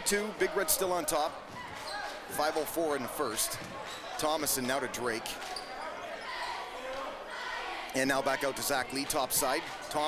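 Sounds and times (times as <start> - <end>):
basketball court noise: 0.0 - 6.8.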